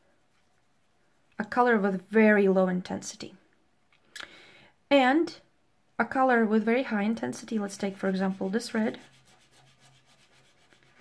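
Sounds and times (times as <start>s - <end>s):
pastel stick rubbing on paper: 7.4s - 11.0s.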